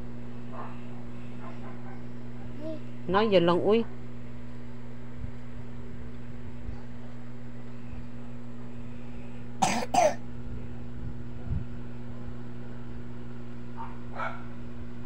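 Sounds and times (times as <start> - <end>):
low electrical hum: 0.0 - 15.0
person coughing: 9.6 - 10.2.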